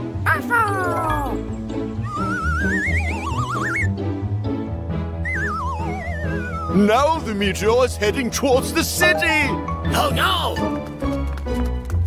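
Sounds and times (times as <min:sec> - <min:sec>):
cartoon background music: 0:00.0 - 0:12.0
warbling whistle-like sound effect: 0:02.0 - 0:03.9, 0:05.2 - 0:06.8.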